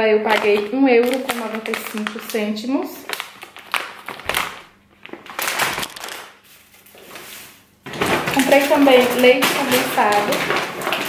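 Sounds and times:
plastic packaging rustling: 0.1s - 11.0s.

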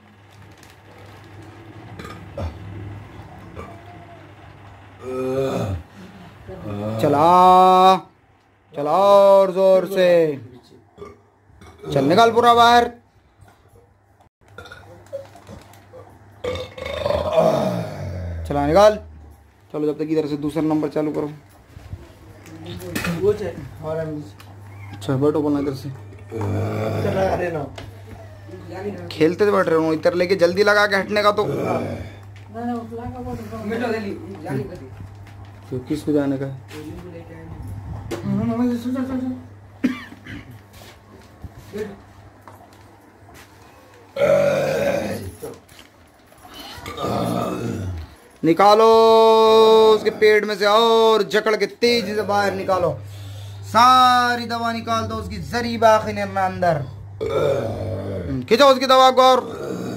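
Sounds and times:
man retching: 1.9s - 2.9s, 5.0s - 5.9s, 11.0s - 12.2s, 14.6s - 15.3s, 16.4s - 18.3s, 26.3s - 27.7s, 39.8s - 40.6s, 44.2s - 45.6s, 46.7s - 48.2s, 57.2s - 58.4s.

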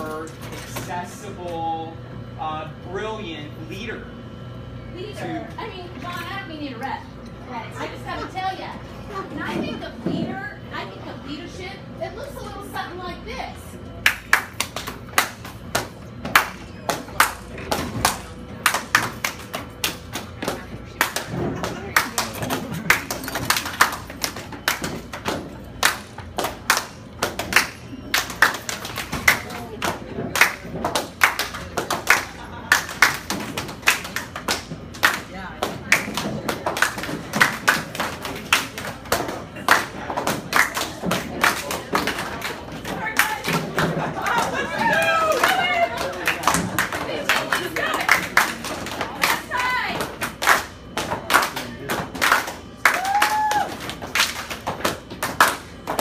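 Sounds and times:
hands clapping in rhythm: 14.0s - 56.0s
voices: 34.9s - 53.7s.

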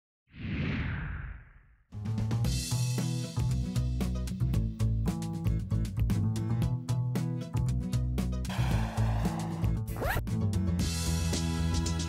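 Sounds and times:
whoosh with deep rumble: 0.4s - 1.8s
music with drums: 2.2s - 6.4s, 10.8s - 12.0s.

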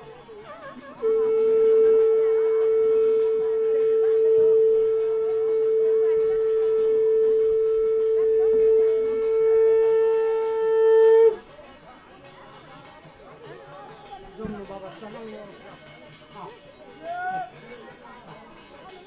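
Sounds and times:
conch shell blown: 0.4s - 11.5s.

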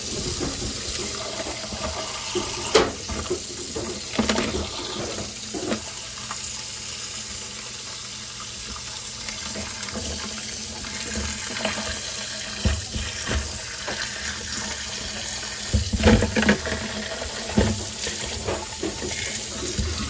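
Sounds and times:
tap water running into sink: 0.0s - 20.0s
ice knocking against sink: 15.6s - 20.0s.

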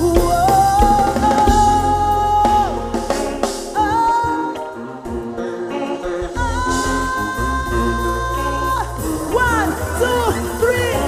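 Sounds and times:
deep bass line: 0.0s - 11.0s
keyboard chords: 0.0s - 11.0s
live band playing: 0.0s - 11.0s.

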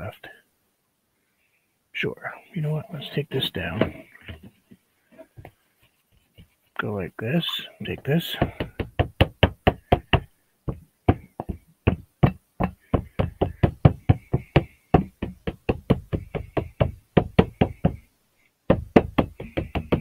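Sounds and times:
plastic bottle knocking on surface: 8.4s - 18.0s, 18.7s - 20.0s.

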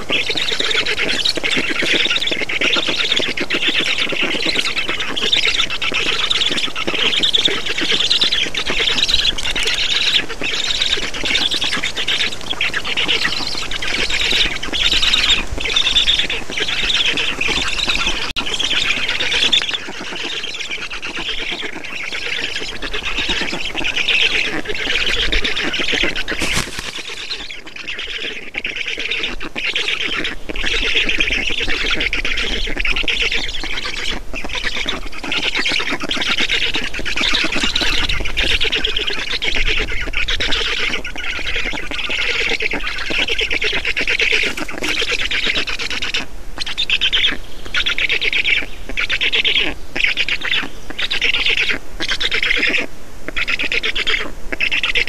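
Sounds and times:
stork chicks calling: 0.0s - 55.0s.

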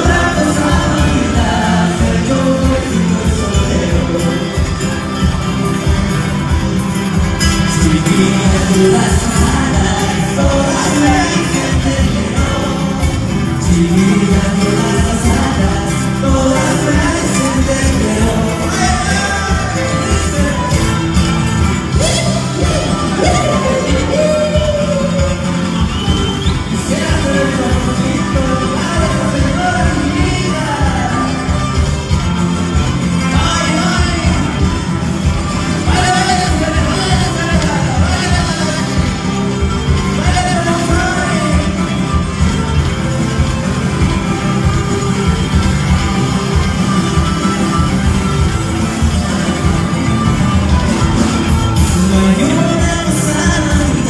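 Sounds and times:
lead vocal singing: 0.0s - 6.5s, 7.1s - 43.1s, 51.0s - 54.0s
live band playing: 0.0s - 54.0s.

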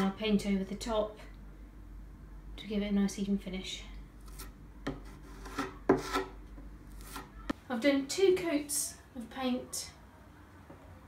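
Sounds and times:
hand tool scraping wood: 4.3s - 6.3s.

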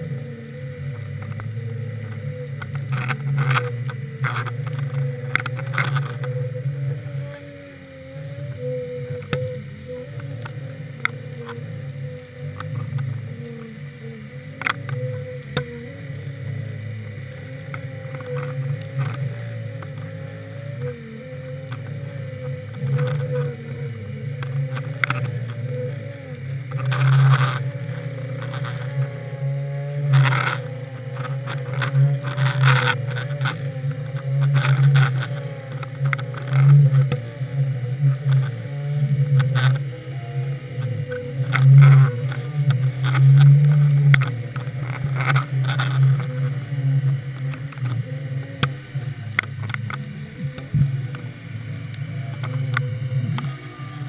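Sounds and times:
faint wavering hum: 0.0s - 54.0s
muffled underwater rumble: 0.0s - 54.0s.

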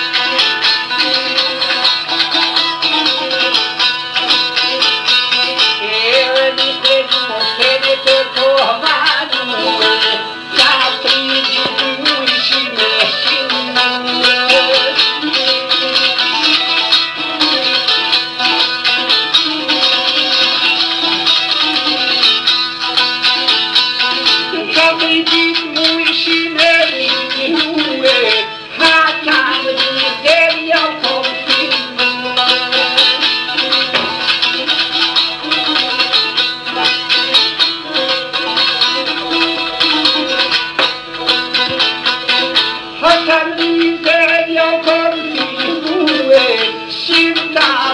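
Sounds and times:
plucked lute melody: 0.0s - 47.9s.

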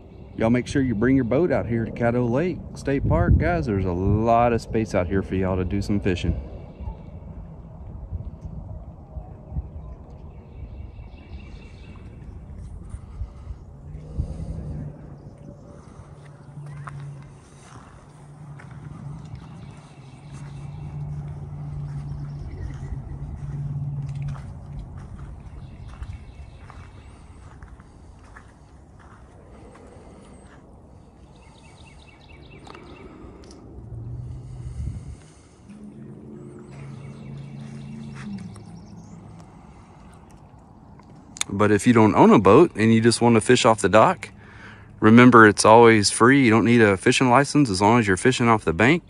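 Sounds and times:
low steady engine hum: 0.0s - 49.0s
wind buffeting microphone: 0.0s - 49.0s.

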